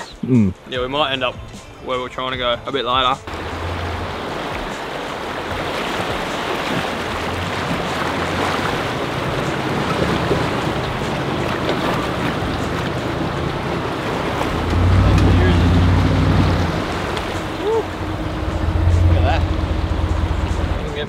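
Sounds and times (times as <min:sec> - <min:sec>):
water rushing and splashing: 0:03.2 - 0:21.0.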